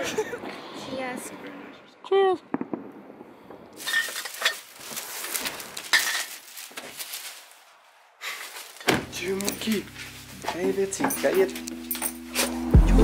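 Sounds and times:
fireworks crackling: 2.5 - 7.7.

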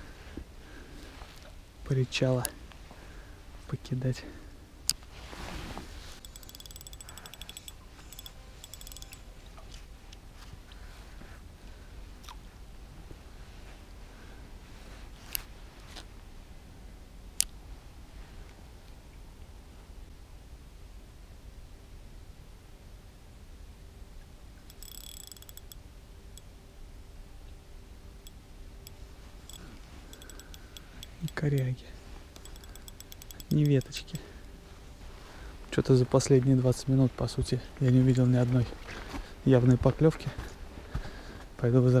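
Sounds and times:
spinning reel ticking: 6.2 - 9.2, 24.7 - 25.8, 29.5 - 31.7, 32.4 - 34.0.

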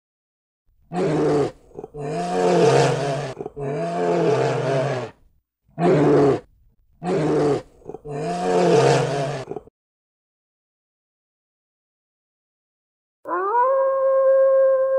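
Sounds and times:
bear roaring: 0.9 - 5.2, 5.8 - 9.7.

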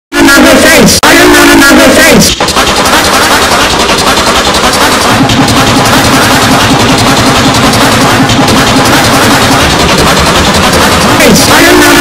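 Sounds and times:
distorted chopped sample: 0.1 - 12.0.

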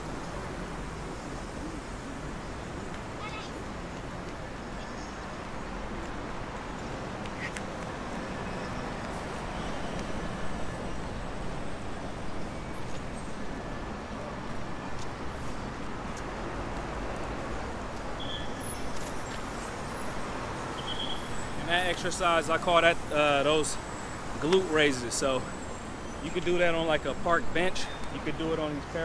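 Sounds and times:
city road traffic: 0.0 - 29.0.

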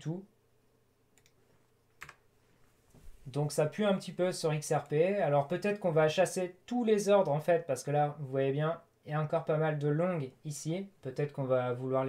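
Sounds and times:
computer controls clicking: 1.1 - 2.2.

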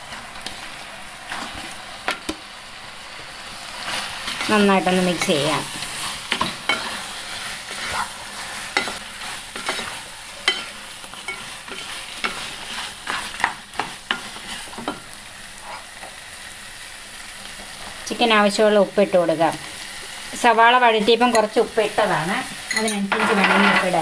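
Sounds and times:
chicken sizzling in a frying pan: 0.0 - 24.0
spatula scraping and knocking pan: 3.9 - 16.1, 22.7 - 24.0.

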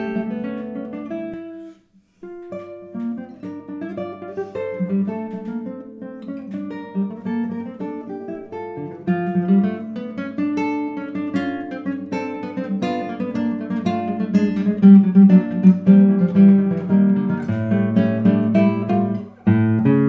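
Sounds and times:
classical guitar fingerstyle: 0.0 - 20.0.

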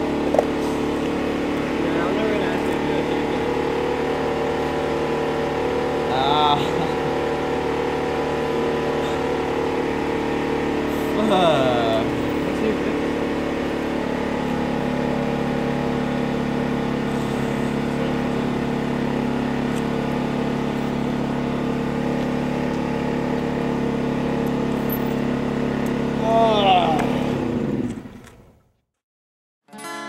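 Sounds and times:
vehicle engine idling: 0.0 - 28.2
person moaning: 6.1 - 7.0, 11.0 - 12.8, 26.2 - 27.4.

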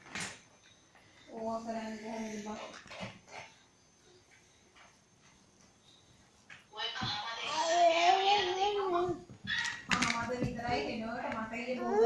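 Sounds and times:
young child whining: 11.8 - 12.0.

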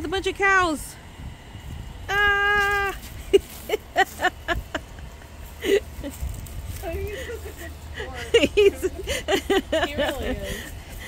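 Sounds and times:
woman's drawn-out cry: 2.1 - 3.1
woman laughing: 2.1 - 11.0.

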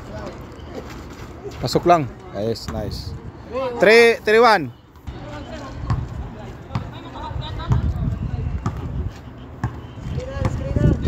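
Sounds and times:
basketball bouncing on concrete: 5.0 - 9.0, 9.6 - 11.0.

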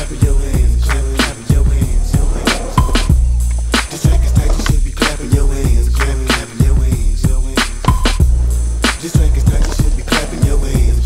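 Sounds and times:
hip hop music with heavy bass: 0.0 - 11.0.

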